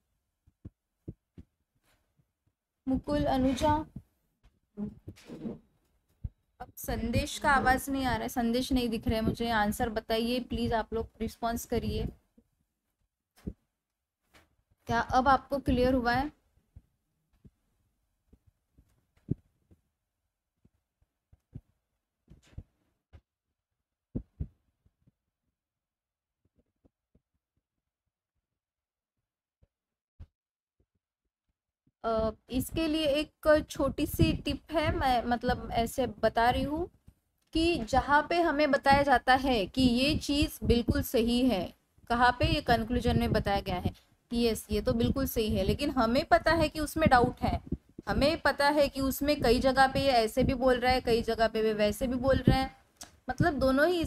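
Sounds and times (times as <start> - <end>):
stylus tapping tablet screen: 0.4 - 12.4, 14.3 - 19.9, 20.6 - 23.3, 24.1 - 25.2, 32.1 - 54.0.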